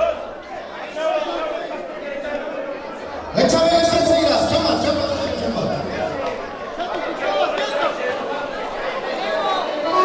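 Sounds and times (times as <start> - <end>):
people chattering in a hall: 0.0 - 10.0.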